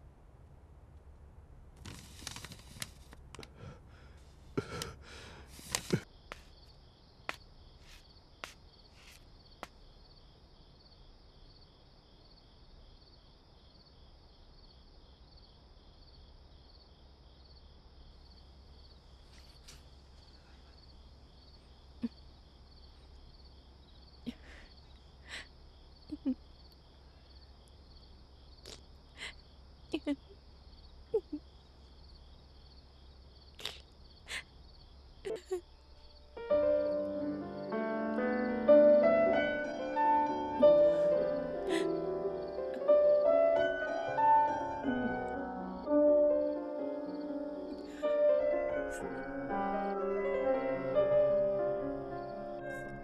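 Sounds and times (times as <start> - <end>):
crickets chirping: 1.9 - 53.0
footsteps on hard floor: 7.8 - 9.2
woman sniffling while crying: 24.3 - 25.6.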